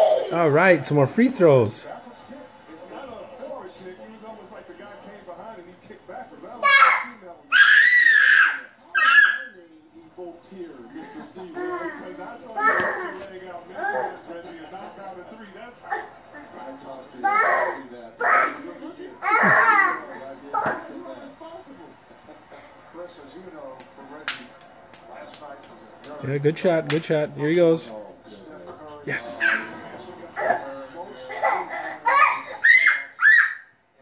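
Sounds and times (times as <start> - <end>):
faint tv commentary: 0.0 - 34.0
toddler squealing: 6.6 - 9.6, 32.0 - 33.7
toddler clapping hands: 23.8 - 26.2.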